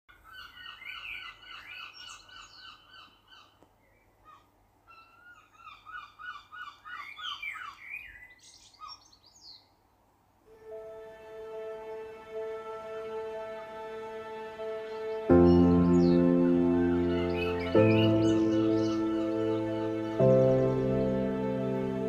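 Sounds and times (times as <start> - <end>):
birds chirping: 0.1 - 9.8, 11.4 - 22.0.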